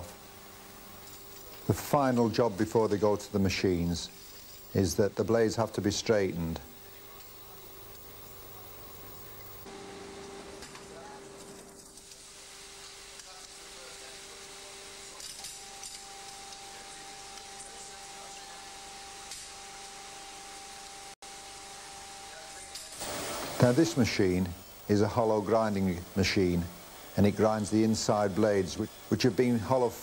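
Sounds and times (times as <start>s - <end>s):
workshop machinery hum: 0.0s - 30.0s.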